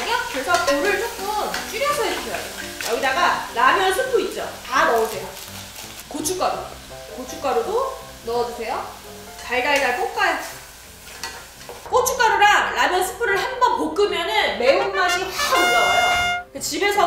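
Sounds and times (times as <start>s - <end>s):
woman talking: 0.0s - 5.4s, 6.1s - 10.4s, 11.9s - 17.0s
food sizzling in oil: 0.0s - 13.7s, 14.4s - 16.5s.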